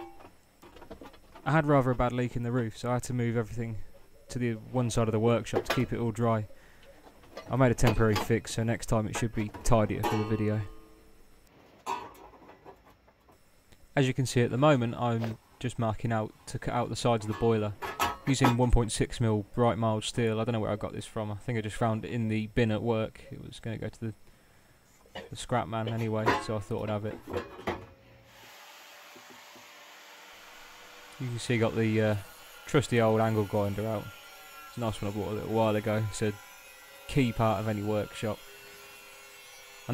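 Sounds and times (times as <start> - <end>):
faint steady hiss: 0.0 - 36.4
metal sheet and tools clattering: 9.2 - 10.8, 25.9 - 27.9.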